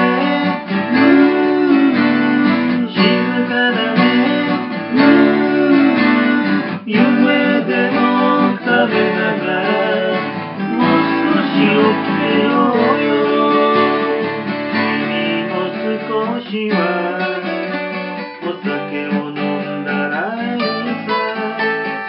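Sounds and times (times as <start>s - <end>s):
strummed acoustic guitar: 0.0s - 22.0s.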